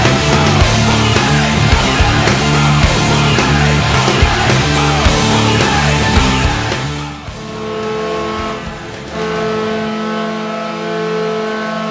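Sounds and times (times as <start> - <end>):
rock song: 0.0 - 10.2
goal horn long steady note: 0.0 - 11.9.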